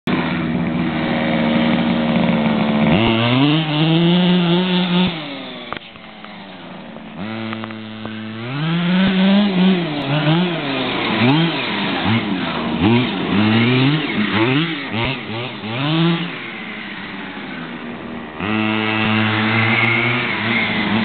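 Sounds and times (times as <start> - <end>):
two-stroke engine revving: 0.1 - 21.0.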